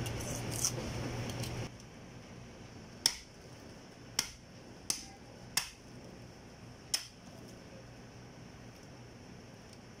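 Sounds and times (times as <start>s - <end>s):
cleaver chopping on wooden block: 3.0s - 3.3s, 4.2s - 5.8s.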